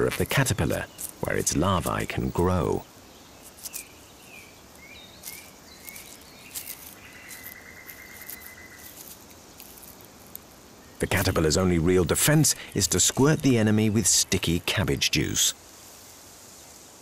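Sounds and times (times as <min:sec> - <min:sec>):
soft ticks and rustles: 0:00.0 - 0:02.3, 0:03.4 - 0:11.3
insect trill: 0:00.0 - 0:17.0.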